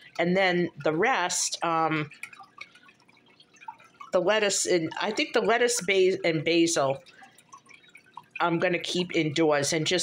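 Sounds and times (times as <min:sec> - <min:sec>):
water dripping: 0:00.0 - 0:10.0.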